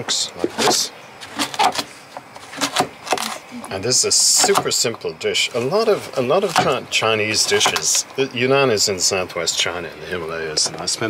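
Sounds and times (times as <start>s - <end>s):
cleaver chopping on cutting board: 4.4s - 4.7s.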